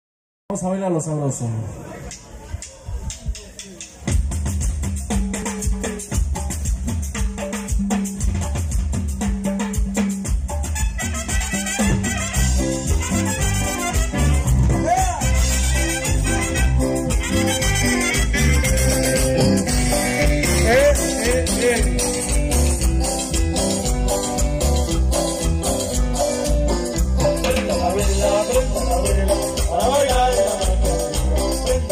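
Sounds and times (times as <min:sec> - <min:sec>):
live band playing dance music: 0:02.0 - 0:31.9
drum kit and percussion hits: 0:02.1 - 0:31.9.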